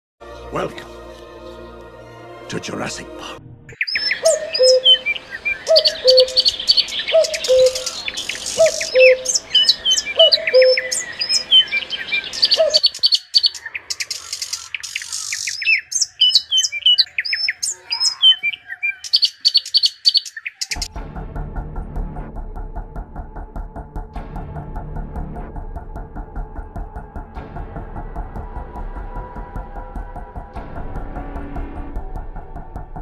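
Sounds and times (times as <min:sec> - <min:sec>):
music with low drone: 0:00.2 - 0:12.8, 0:20.7 - 0:33.0
birds chirping: 0:02.5 - 0:20.9
low bird call: 0:03.7 - 0:20.9.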